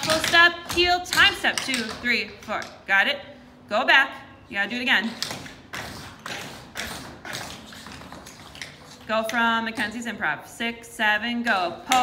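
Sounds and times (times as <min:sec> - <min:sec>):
tap shoes on wooden floor: 0:00.0 - 0:02.8.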